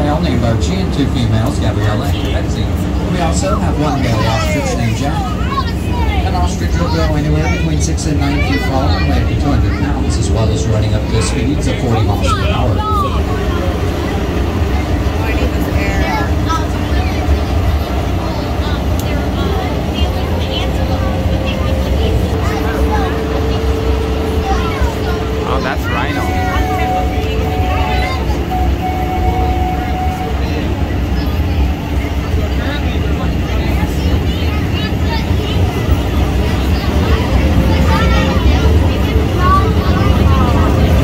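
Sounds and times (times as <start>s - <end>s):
miniature train rumbling: 0.0s - 41.0s
steady held tones: 20.3s - 30.8s.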